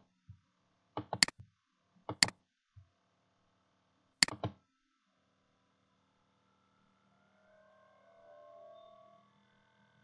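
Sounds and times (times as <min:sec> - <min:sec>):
faint wavering tone: 0:04.6 - 0:10.0.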